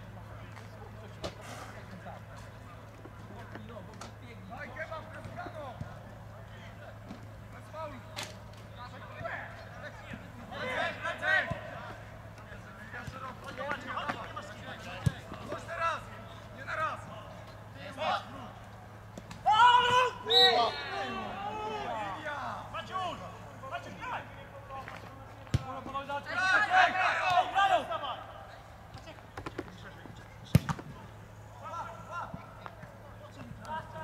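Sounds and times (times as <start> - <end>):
players shouting: 9.0 - 24.7, 25.5 - 29.0
ball being kicked: 25.5 - 25.8, 30.5 - 30.9.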